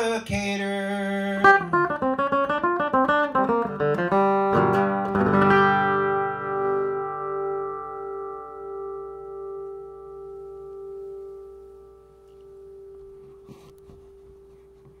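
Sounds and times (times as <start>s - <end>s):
acoustic guitar chord ringing: 1.3s - 15.0s.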